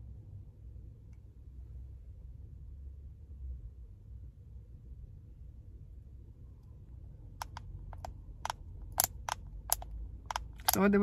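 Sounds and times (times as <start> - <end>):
low steady rumble: 0.0 - 11.0
small plastic clicks: 7.4 - 10.9.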